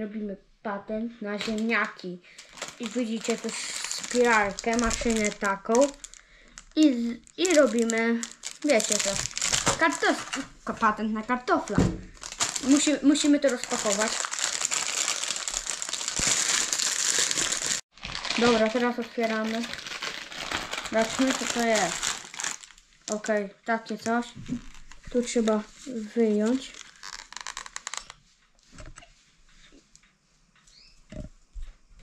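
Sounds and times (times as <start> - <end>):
plastic bag crinkling: 1.4 - 10.5, 12.1 - 23.4, 24.2 - 28.2
plastic packaging crackling: 1.4 - 10.5, 12.1 - 23.4, 24.1 - 28.2.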